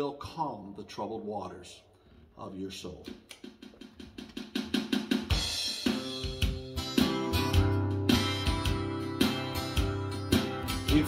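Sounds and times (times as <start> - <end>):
drums: 3.1 - 11.0
acoustic guitar strumming: 5.7 - 11.0
bass line: 6.4 - 11.0.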